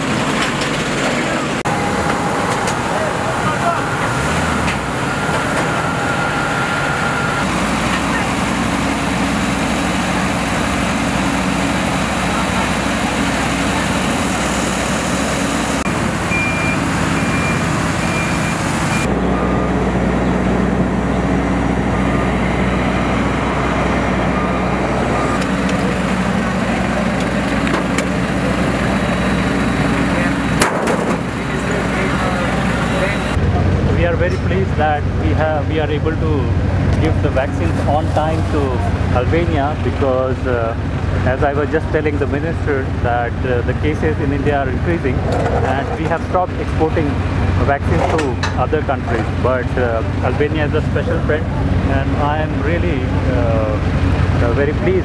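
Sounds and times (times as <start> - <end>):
aircraft engines running: 0.0 - 55.0.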